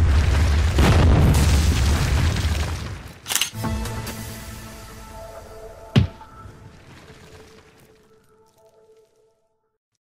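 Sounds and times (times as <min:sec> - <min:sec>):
wall smashing crash: 0:00.0 - 0:03.1.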